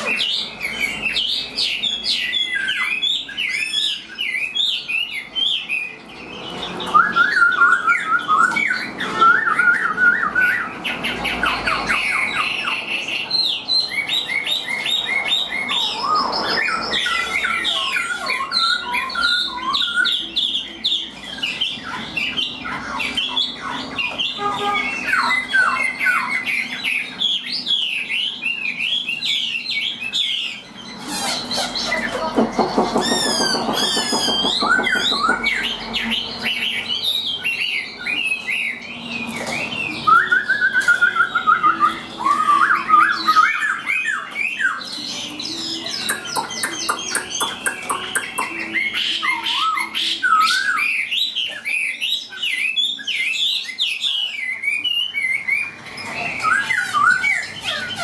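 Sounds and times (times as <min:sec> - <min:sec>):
bird singing whistled trills: 0:00.0 - 0:58.0.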